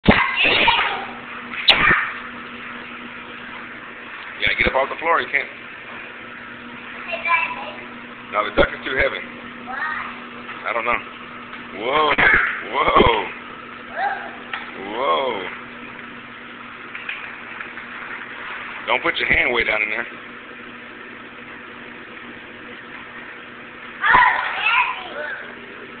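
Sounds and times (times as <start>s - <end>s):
air blower hissing and humming: 0.0s - 26.0s
child yelling: 0.2s - 1.2s, 7.1s - 7.8s, 9.7s - 10.2s, 12.2s - 12.7s, 13.9s - 14.4s, 24.0s - 25.6s.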